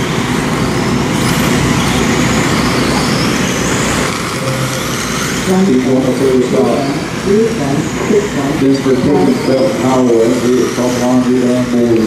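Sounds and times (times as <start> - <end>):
man announcing over public address: 5.4 - 12.0.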